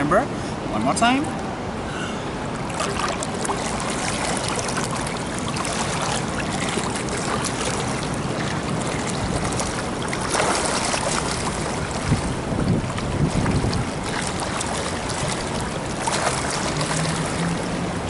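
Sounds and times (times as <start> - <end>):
pool water splashing: 1.6 - 18.0.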